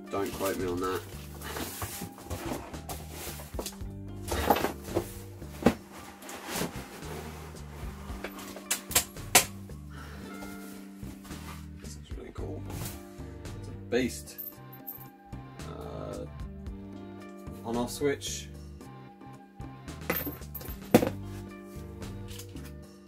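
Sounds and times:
background music with bass: 0.0s - 23.0s
cardboard and foam packaging rustling: 0.1s - 8.7s, 10.2s - 11.8s.

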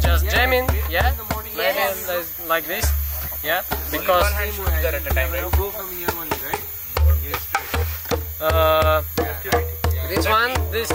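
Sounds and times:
djembe hand drumming: 0.0s - 1.9s, 2.8s - 10.9s.

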